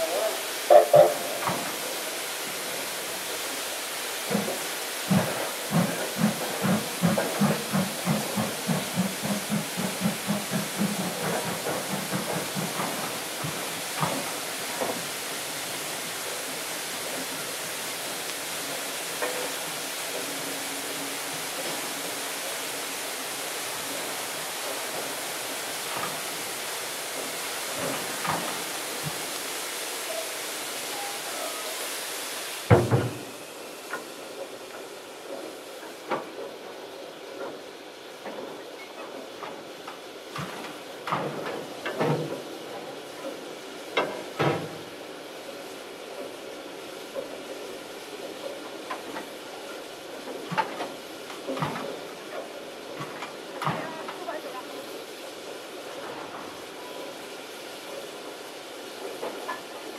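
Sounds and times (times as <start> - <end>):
record hiss: 0.0 - 59.9
steam locomotive chuffing: 0.0 - 59.9.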